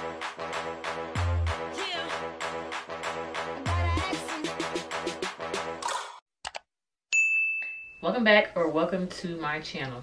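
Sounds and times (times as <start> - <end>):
high ringing ding: 7.1 - 8.0.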